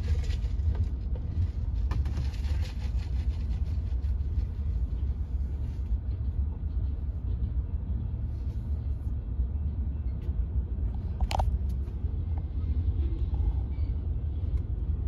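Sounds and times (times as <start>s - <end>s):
train wheel clatter: 0.0s - 8.5s
freight train rumbling: 0.0s - 15.0s.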